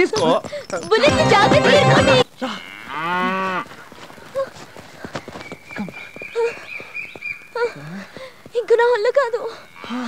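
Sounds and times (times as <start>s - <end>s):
rural background: 0.0s - 10.0s.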